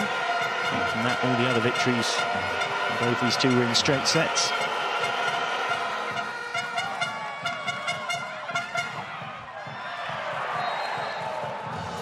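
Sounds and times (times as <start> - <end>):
fans' horns: 0.0 - 9.4
crowd noise: 0.0 - 12.0
rhythmic claps or drums: 5.0 - 12.0.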